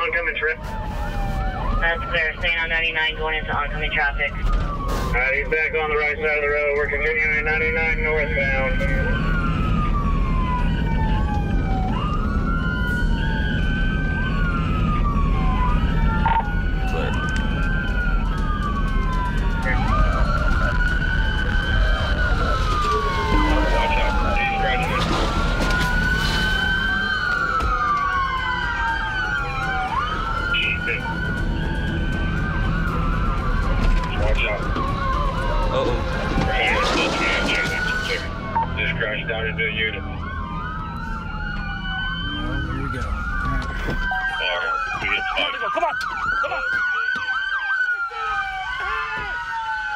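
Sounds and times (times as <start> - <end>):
car road and engine rumble: 0.0 - 49.9
police sirens wailing: 0.0 - 49.9.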